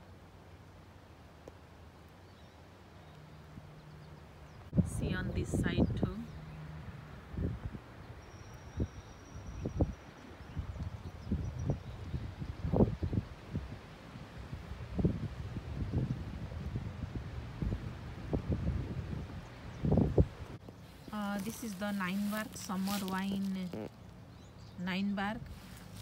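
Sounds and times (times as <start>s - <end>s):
wind buffeting microphone: 4.6s - 23.9s
leaves rustling: 19.0s - 26.0s.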